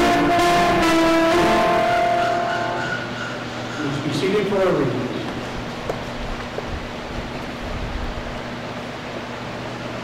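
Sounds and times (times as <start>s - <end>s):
church organ chord: 0.0s - 3.1s
room noise: 0.0s - 10.0s.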